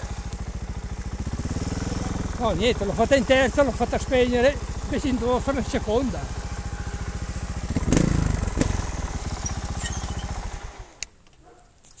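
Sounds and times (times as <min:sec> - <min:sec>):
motorcycle engine idling: 0:00.0 - 0:11.6.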